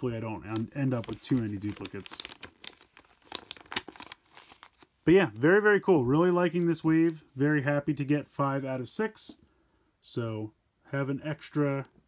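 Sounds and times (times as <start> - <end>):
paper leaflet crinkling: 0.0 - 8.8.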